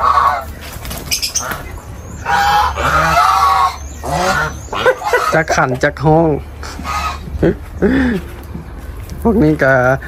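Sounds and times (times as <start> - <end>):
geese honking: 0.0 - 8.1.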